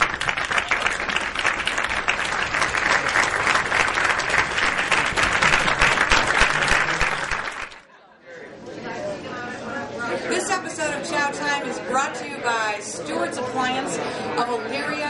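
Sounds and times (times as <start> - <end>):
audience applauding: 0.0 - 7.9.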